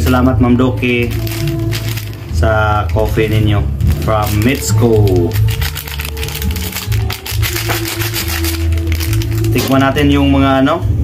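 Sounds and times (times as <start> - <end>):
plastic sachet crinkling: 0.0 - 10.1
background music with bass: 0.0 - 11.0.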